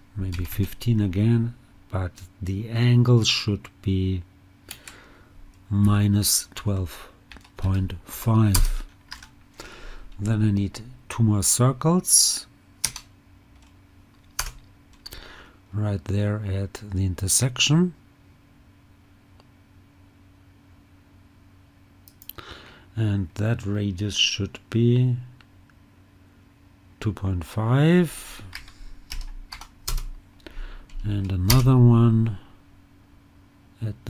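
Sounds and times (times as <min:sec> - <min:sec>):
faint low hum: 0:00.0 - 0:34.0
computer keyboard keystroke: 0:08.5 - 0:09.3, 0:12.8 - 0:15.1, 0:28.5 - 0:30.1.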